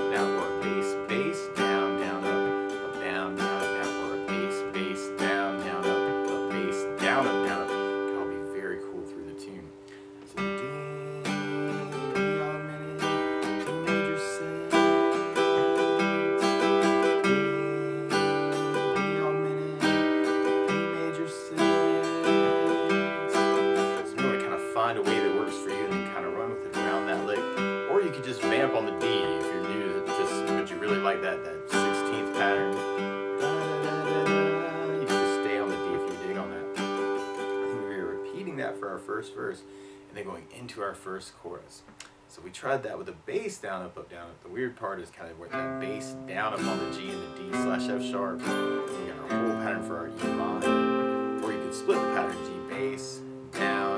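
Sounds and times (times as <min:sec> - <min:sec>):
acoustic guitar strumming: 0:00.0 - 0:53.9.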